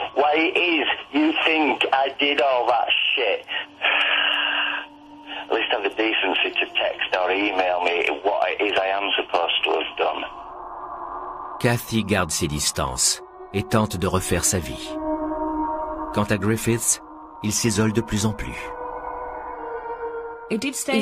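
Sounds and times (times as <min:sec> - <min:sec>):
speech through telephone: 0:05.5 - 0:10.3.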